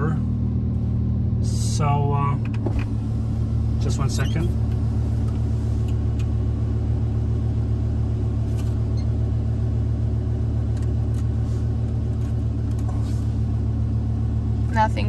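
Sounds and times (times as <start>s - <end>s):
car engine low rumble: 0.0s - 15.0s.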